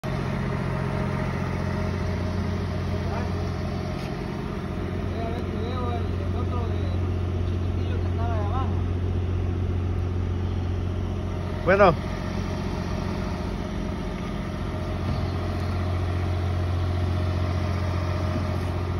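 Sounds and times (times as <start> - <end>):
heavy engine droning: 0.0 - 18.9
distant voices: 0.1 - 18.9.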